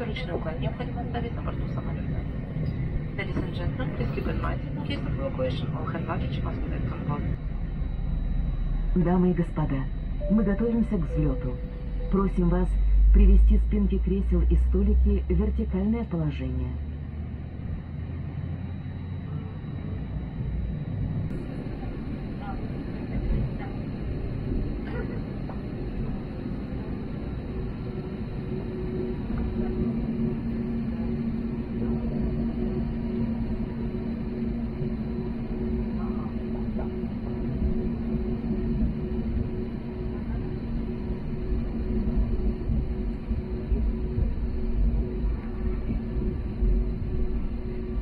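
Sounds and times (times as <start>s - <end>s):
aircraft engine rumble: 0.0s - 48.0s
two-tone hum: 0.0s - 48.0s.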